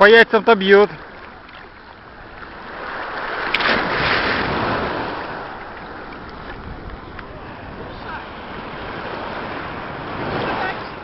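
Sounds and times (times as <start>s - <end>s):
wave washing in shallows: 0.6s - 11.0s.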